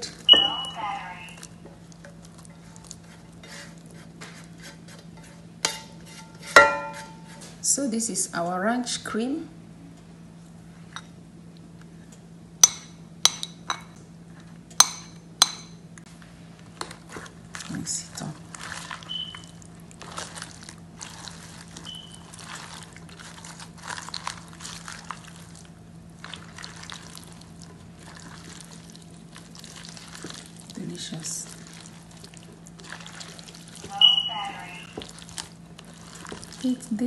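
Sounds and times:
spatula clinking on glassware: 0:05.7 - 0:07.2
low hum: 0:33.6 - 0:35.8.

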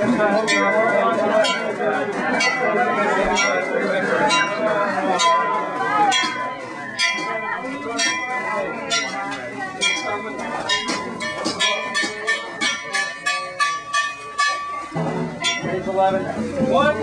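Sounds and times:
crowd murmur: 0:00.0 - 0:17.0.

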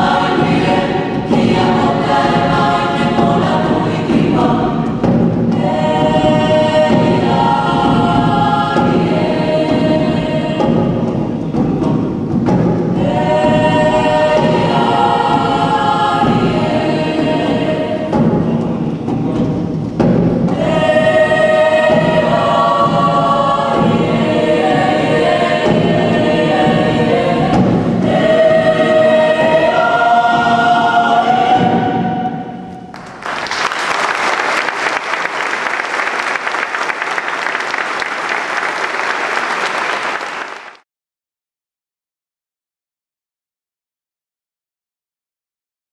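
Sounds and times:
choir singing in parts: 0:00.0 - 0:40.7
audience applause: 0:32.9 - 0:40.8.

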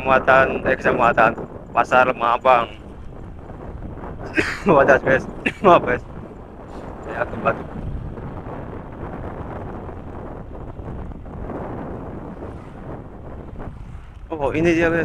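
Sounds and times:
tyres on road: 0:00.0 - 0:15.0
wind rushing over microphone: 0:00.0 - 0:15.0.

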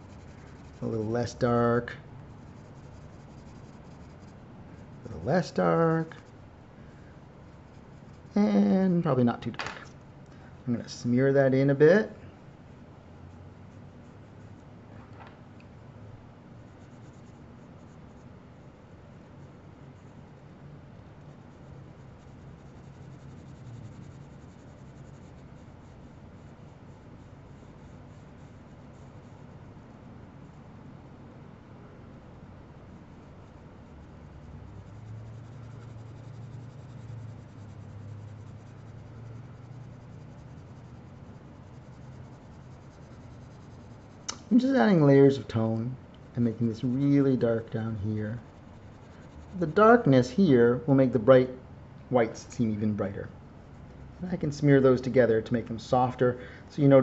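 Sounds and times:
pencil scratching on paper: 0:00.0 - 0:06.4, 0:07.5 - 0:08.7, 0:16.6 - 0:20.3, 0:21.2 - 0:30.6, 0:32.9 - 0:45.8, 0:46.4 - 0:50.8
low steady hum: 0:00.0 - 0:57.0.

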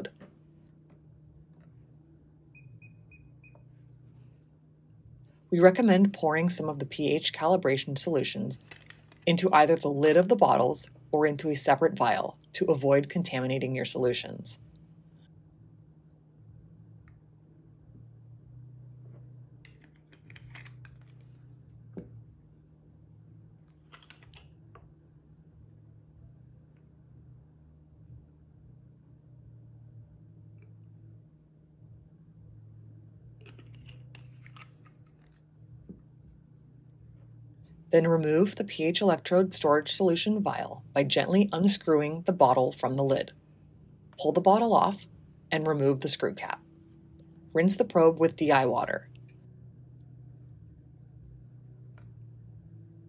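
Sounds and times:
faint low hum: 0:00.0 - 0:53.0.

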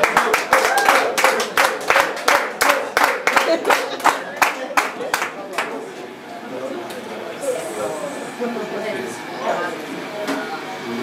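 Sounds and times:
audience clapping in rhythm: 0:00.0 - 0:05.9.

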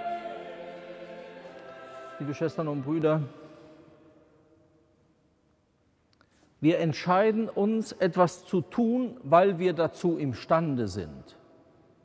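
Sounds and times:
choir holding sustained chord: 0:00.0 - 0:04.0.

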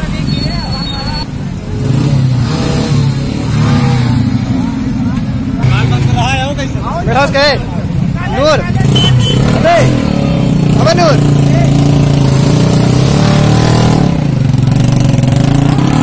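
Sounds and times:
motorcycle engines idling: 0:03.1 - 0:12.9.

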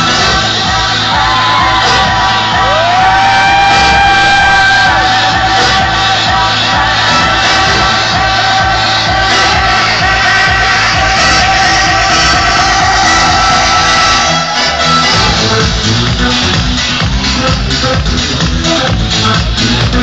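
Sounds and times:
crowd shouting and whooping: 0:00.0 - 0:20.0
house music over sound system: 0:00.0 - 0:20.0.

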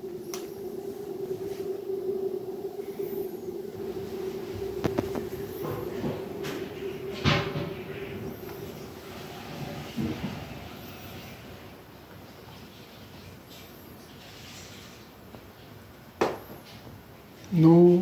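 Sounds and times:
low mechanical hum: 0:00.0 - 0:18.0.

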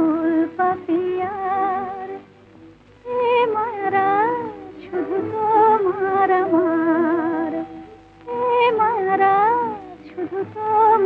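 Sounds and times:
woman singing: 0:00.0 - 0:02.2, 0:03.0 - 0:11.0
instrumental accompaniment: 0:00.0 - 0:11.0.

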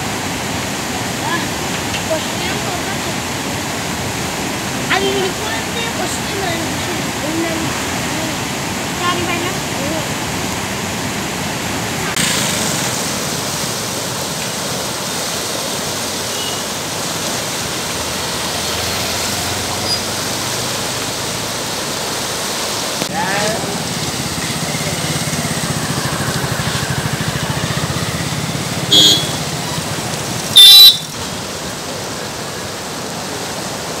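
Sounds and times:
loud short blasts: 0:28.9 - 0:29.4.

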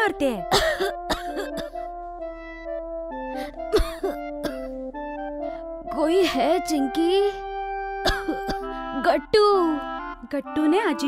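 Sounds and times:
gentle music with held tones: 0:00.0 - 0:11.0
woman coughing: 0:00.5 - 0:01.8, 0:03.4 - 0:04.7, 0:08.0 - 0:08.7.

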